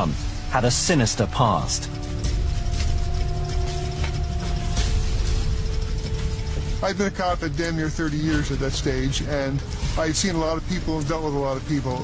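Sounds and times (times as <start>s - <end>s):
dark underscore low sustained notes: 0.0s - 12.0s
dense rumble: 0.0s - 12.0s.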